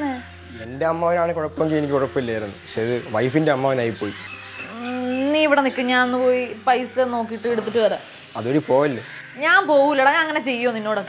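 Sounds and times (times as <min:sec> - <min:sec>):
people talking: 0:09.4 - 0:11.0.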